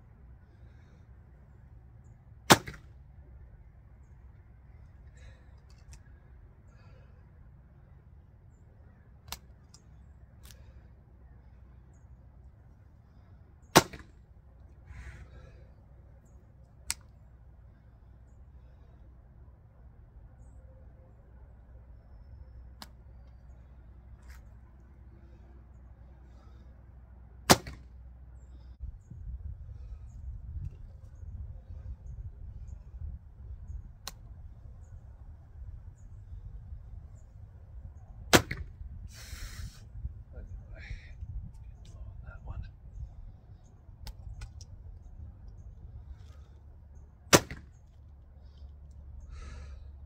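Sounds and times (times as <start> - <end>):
bowstring snapping: 9.2 - 10.6, 16.8 - 17.2, 22.8 - 23.4.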